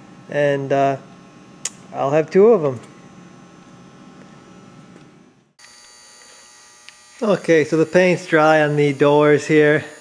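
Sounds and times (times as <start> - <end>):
faint background hum and hiss: 0.0 - 5.6.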